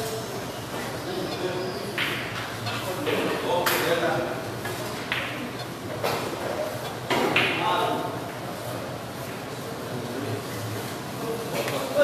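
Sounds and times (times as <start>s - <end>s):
murmur of voices: 0.0s - 12.0s
billiard balls clicking: 1.2s - 7.7s.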